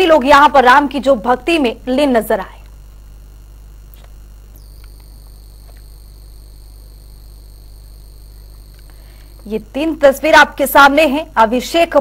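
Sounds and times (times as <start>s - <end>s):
high-pitched whine: 0.0s - 11.1s
low electrical hum: 0.0s - 12.0s
faint clicks: 8.5s - 9.5s.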